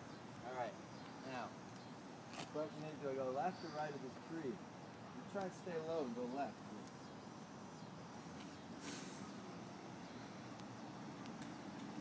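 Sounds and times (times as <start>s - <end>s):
outdoor background noise: 0.0s - 12.0s
footsteps on asphalt: 1.0s - 2.7s
brief hiss: 8.4s - 9.5s.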